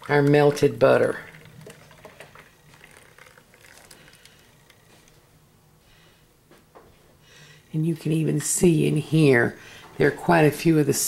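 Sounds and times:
liquid pouring and splashing: 0.0 - 4.9.

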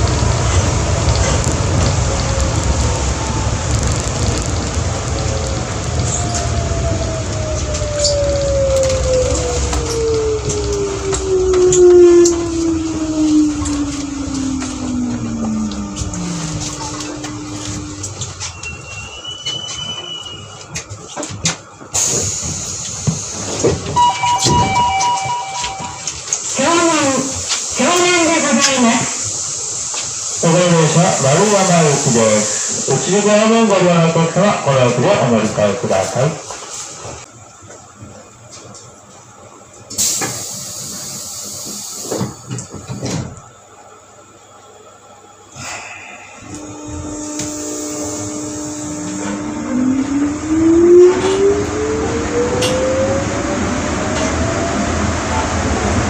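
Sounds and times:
on-board announcement: 0.0 - 18.9, 23.8 - 29.3, 30.4 - 36.6, 46.4 - 56.0
people-mover braking rumble and whine: 0.0 - 56.0
two-tone chime: 24.0 - 26.2.

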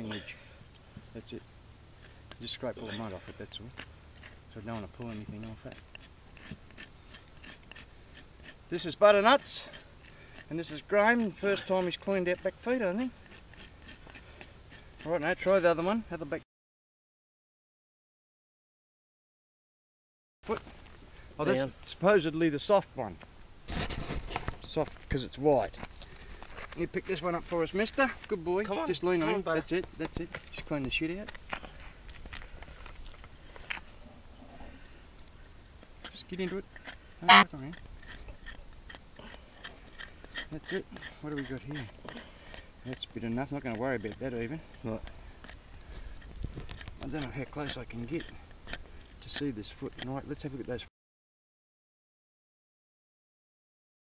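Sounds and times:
hoof pick scraping mud: 2.0 - 16.3, 23.7 - 50.8.

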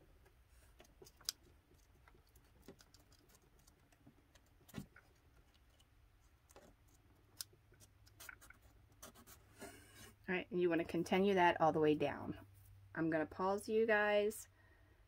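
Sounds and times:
faint clicks and taps: 0.2 - 9.0.

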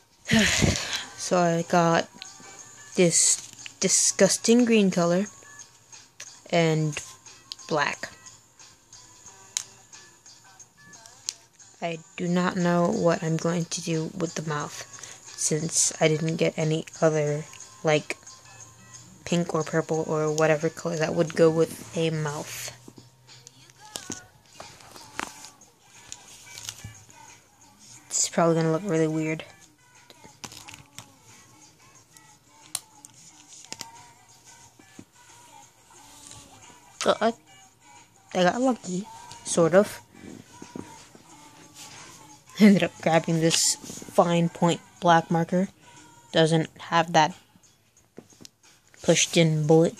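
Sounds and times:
faint music: 0.0 - 49.9.

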